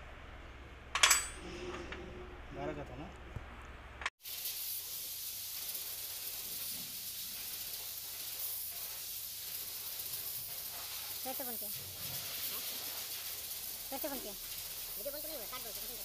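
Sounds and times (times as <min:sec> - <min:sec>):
steady hiss: 0:04.2 - 0:16.0.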